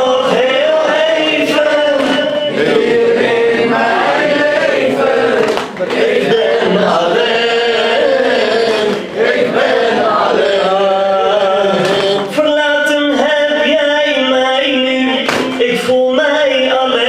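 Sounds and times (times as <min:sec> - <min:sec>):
man chanting a lament: 0:00.0 - 0:03.2, 0:10.0 - 0:17.0.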